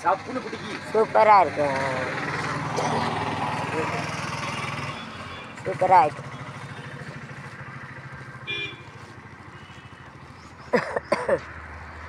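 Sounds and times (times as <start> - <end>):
small engine puttering: 0.0 - 12.0.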